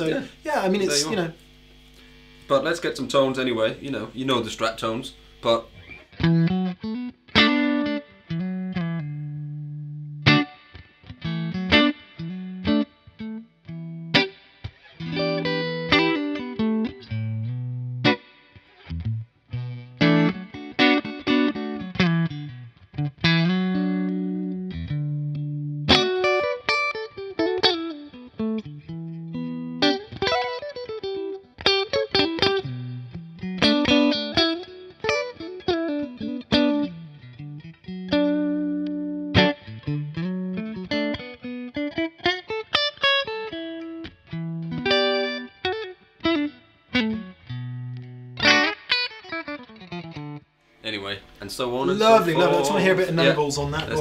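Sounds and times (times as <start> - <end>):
electric guitar lead lines: 0.0 - 54.0.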